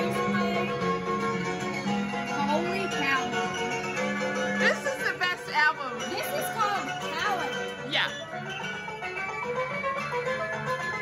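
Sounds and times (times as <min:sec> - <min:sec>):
instrumental music from a record: 0:00.0 - 0:11.0.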